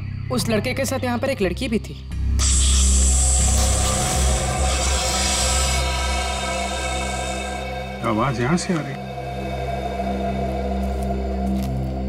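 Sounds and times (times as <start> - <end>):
low sustained drone music: 2.1 - 12.0.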